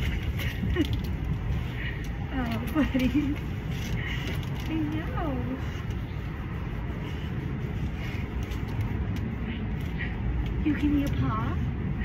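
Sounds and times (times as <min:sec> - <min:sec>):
low urban rumble: 0:00.0 - 0:12.0.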